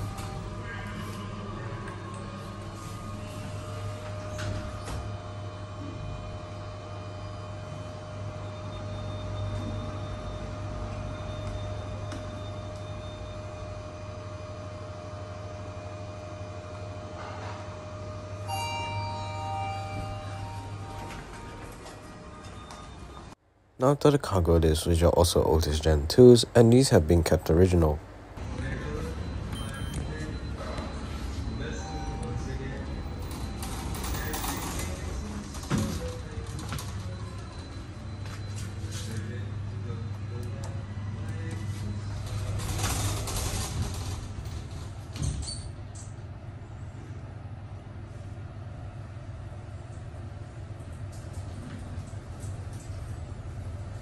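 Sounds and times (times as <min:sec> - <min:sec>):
lift car low hum: 0:00.0 - 0:54.0
lift arrival chime: 0:17.8 - 0:23.4, 0:28.4 - 0:44.3.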